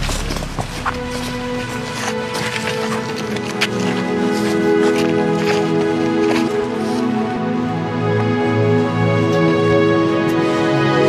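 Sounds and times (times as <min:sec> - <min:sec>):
footsteps on gravel: 0:00.0 - 0:07.6
slow music with held notes: 0:00.0 - 0:11.0.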